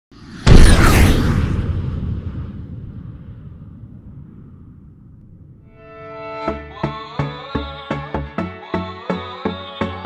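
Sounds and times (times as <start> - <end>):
low rumbling boom: 0.2 - 5.8.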